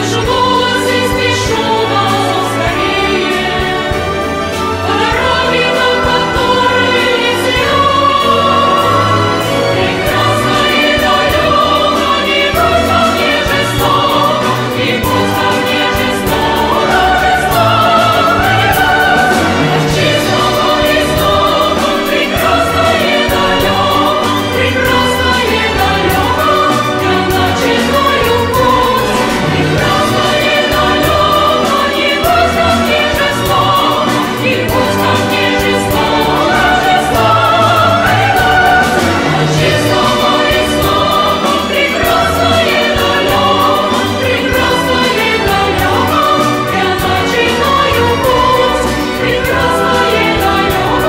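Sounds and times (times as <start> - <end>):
choir singing: 0.0 - 51.0
symphony orchestra: 0.0 - 51.0.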